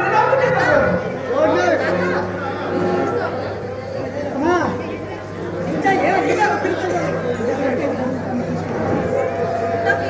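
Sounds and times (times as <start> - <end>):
voices talking over each other: 0.0 - 10.0.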